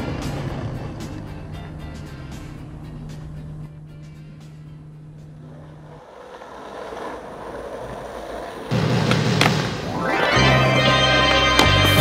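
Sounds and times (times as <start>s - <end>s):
vehicle rumbling: 0.0s - 10.0s
low hum: 0.0s - 11.1s
loud soundtrack music: 8.8s - 12.0s.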